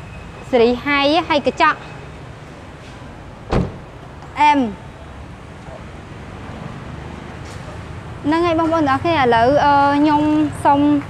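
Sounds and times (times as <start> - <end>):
car door shutting: 3.5 - 3.9.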